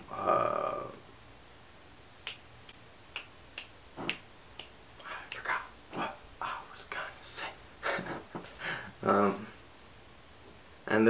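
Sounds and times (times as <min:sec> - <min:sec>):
fingers snapping: 0:02.2 - 0:05.5.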